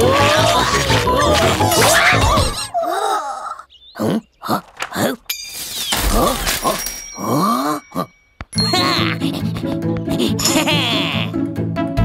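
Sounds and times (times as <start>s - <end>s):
cartoon character vocal sounds: 0.0s - 5.2s.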